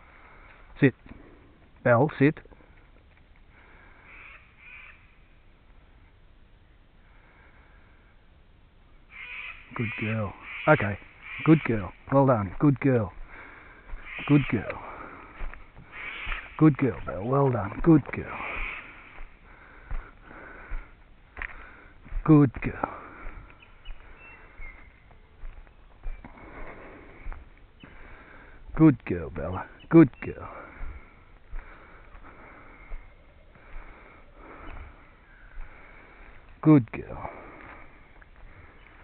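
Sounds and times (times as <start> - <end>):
person breathing: 0.0 - 1.7, 2.5 - 4.2, 7.0 - 8.3, 13.1 - 17.1, 17.8 - 28.8, 30.5 - 36.6, 37.2 - 39.0
crow cawing: 3.6 - 5.3, 9.1 - 12.0, 13.2 - 20.9.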